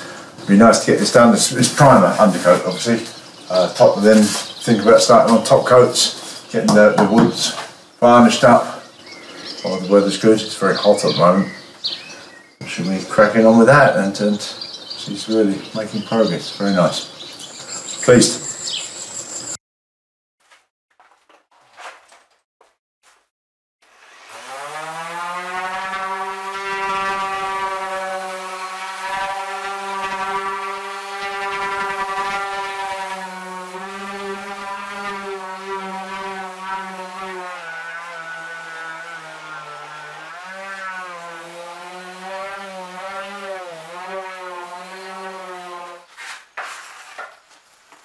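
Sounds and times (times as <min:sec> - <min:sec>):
orbital sander whine: 0:23.9 - 0:46.1.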